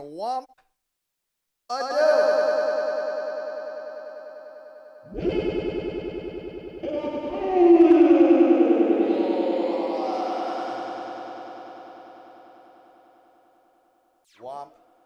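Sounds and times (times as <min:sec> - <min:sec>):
tone sliding down in pitch: 0:05.1 - 0:11.2
distorted vocal electronic music: 0:06.8 - 0:11.6.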